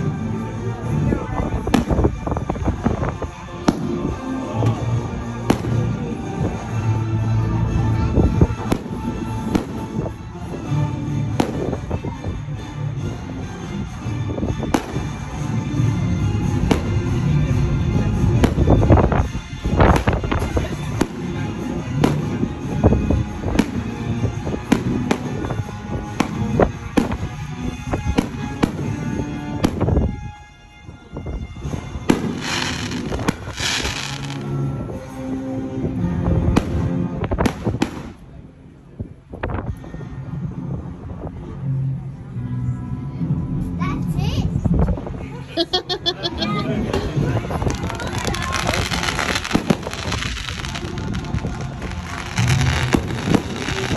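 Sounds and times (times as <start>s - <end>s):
music playing: 0.0s - 53.9s
fireworks bangs: 32.1s - 34.5s, 47.6s - 53.9s.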